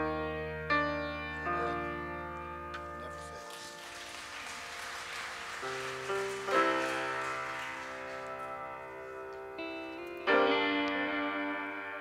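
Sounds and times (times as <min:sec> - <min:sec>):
band playing sustained chords: 0:04.8 - 0:12.0.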